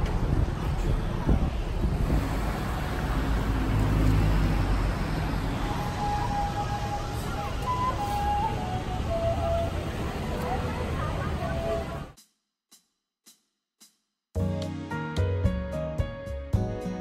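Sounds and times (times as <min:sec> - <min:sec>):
street traffic rumble: 0:00.0 - 0:12.2.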